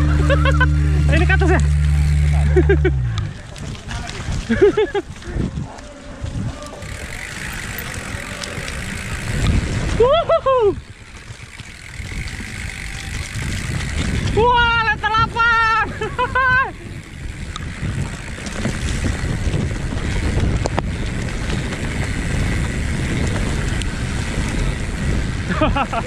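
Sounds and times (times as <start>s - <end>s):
bike rolling over dirt trail: 0.0s - 26.0s
wind buffeting microphone: 0.0s - 26.0s.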